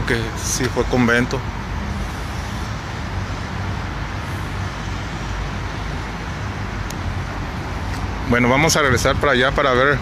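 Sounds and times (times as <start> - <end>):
street traffic engine hum: 0.0 - 10.0.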